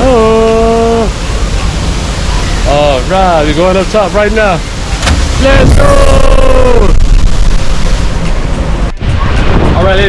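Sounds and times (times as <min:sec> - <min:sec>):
wind buffeting microphone: 0:00.0 - 0:10.0
man shouting: 0:05.4 - 0:07.0.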